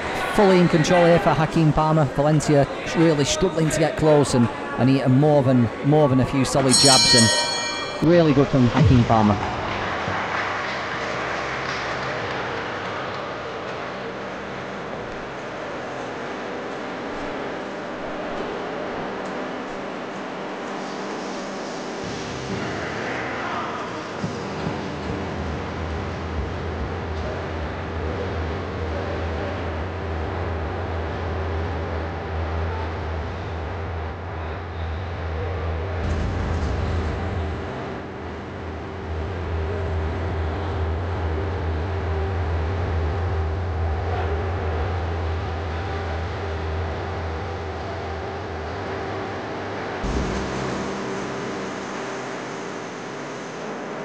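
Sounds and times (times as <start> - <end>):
crowd murmur: 0.0 - 54.0
low bass drone: 24.0 - 54.0.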